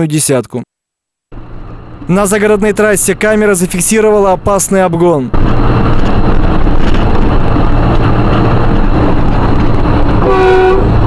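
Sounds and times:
car engine and road noise: 1.3s - 11.0s
vehicle horn: 10.2s - 11.0s.

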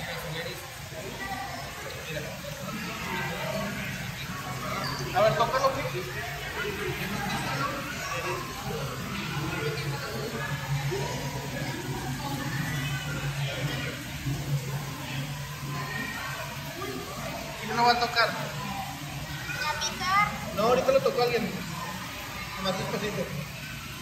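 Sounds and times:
indistinct chatter: 0.0s - 24.0s
children's voices: 0.9s - 17.6s, 18.4s - 20.8s, 21.6s - 24.0s.

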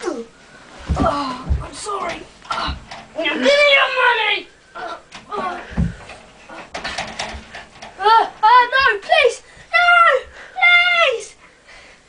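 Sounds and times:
rustling of bedding: 0.0s - 3.7s.

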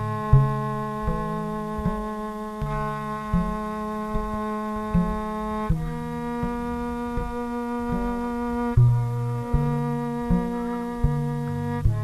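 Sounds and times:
double bass bowed drone: 0.0s - 12.0s.

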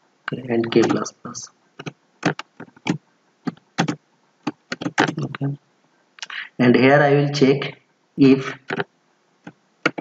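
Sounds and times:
computer keyboard typing: 0.6s - 1.1s, 1.8s - 5.4s, 8.6s - 10.0s.

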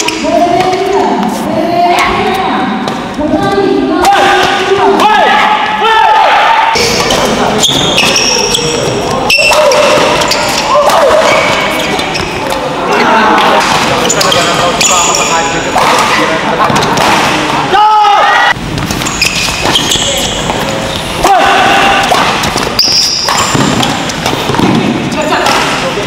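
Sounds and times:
people shouting: 3.4s - 12.0s, 17.0s - 18.6s, 21.2s - 23.9s
shoes squeaking on court: 6.8s - 12.7s, 13.9s - 16.9s, 18.7s - 21.2s, 22.1s - 25.8s
racket striking shuttlecock: 18.8s - 21.0s, 22.0s - 25.9s.

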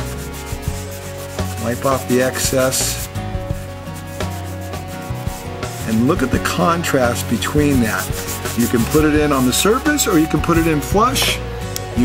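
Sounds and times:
cloth rubbing on board: 0.0s - 11.0s.

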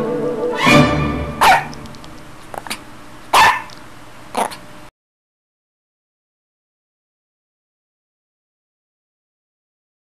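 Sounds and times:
dog barking: 1.4s - 1.8s, 3.3s - 3.8s, 4.4s - 4.6s.

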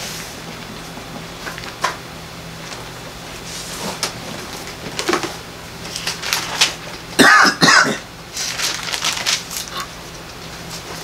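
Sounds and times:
man coughing: 7.2s - 8.1s.

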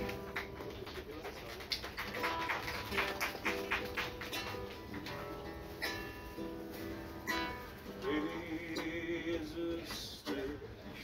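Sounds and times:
acoustic guitar strumming: 3.1s - 11.0s.

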